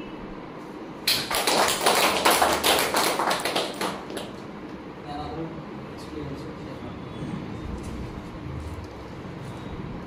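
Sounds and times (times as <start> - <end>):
people clapping: 1.0 - 4.4.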